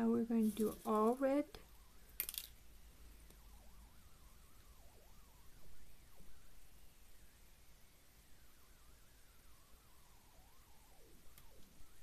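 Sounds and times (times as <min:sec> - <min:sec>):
faint handling sounds: 0:00.3 - 0:01.3.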